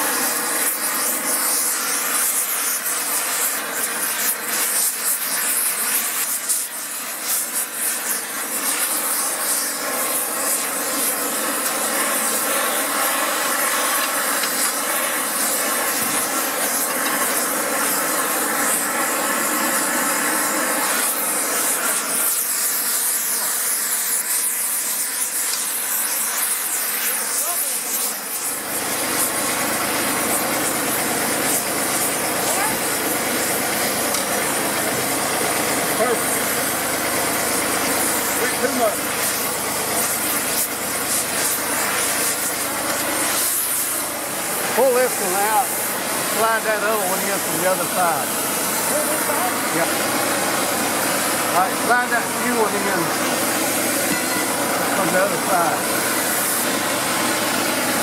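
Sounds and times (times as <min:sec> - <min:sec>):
torch flame hissing: 0:00.0 - 0:58.0.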